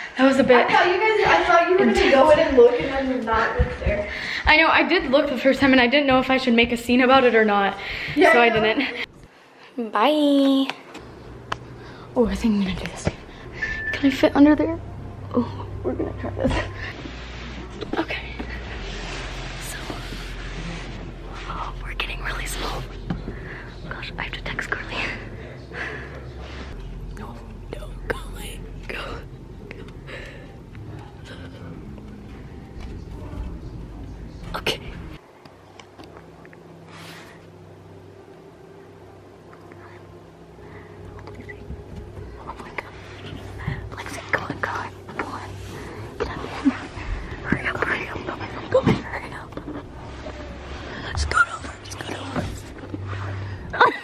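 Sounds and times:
girl whispering: 21.4 - 22.9, 27.7 - 29.2, 46.2 - 49.8, 50.9 - 52.7.

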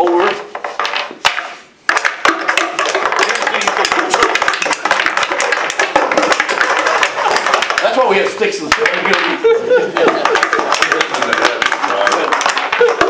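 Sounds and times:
sticks hitting puck clatter: 0.0 - 9.4, 10.0 - 13.0.

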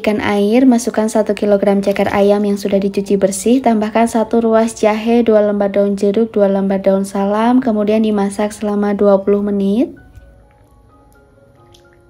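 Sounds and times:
soft slow background music: 0.0 - 12.0
water dripping and splashing: 10.1 - 12.0.

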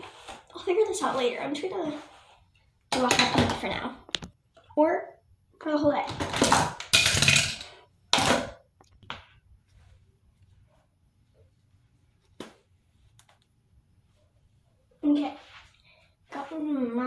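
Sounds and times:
close rustling and handling: 8.9 - 16.8.

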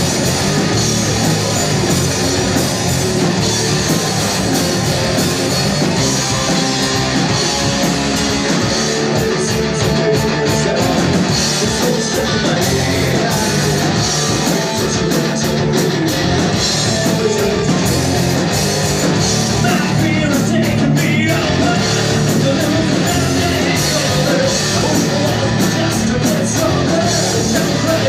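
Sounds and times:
bass guitar: 0.0 - 28.0
drum kit: 0.0 - 28.0
electric guitar: 0.0 - 28.0.

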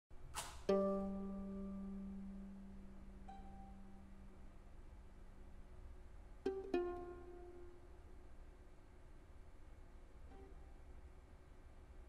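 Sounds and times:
plucked violin notes: 0.7 - 4.8, 6.4 - 8.2, 10.3 - 10.8.

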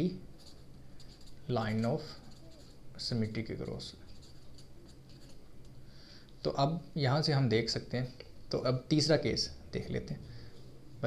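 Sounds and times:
pen scratching on paper: 2.0 - 2.8, 4.1 - 5.5.

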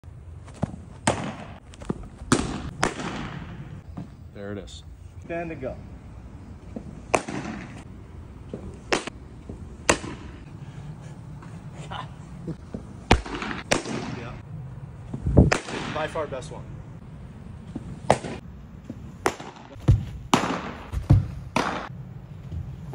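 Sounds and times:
baseballs smacking into gloves: 0.4 - 4.1, 6.7 - 10.4, 12.6 - 14.3, 15.1 - 16.0, 17.7 - 22.6
sharp knocks and thuds: 19.2 - 21.9.

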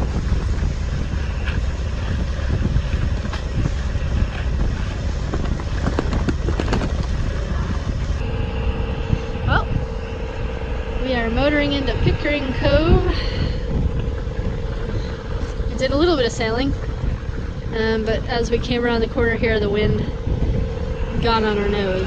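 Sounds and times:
outboard motor running: 0.0 - 22.0
wind buffeting microphone: 0.0 - 22.0.

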